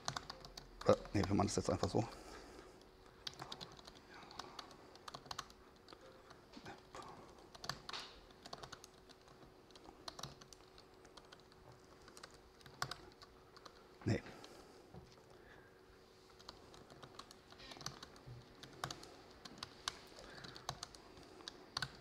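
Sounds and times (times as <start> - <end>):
typing on laptop keyboard: 0.0 - 2.1, 2.8 - 14.5, 16.3 - 22.0.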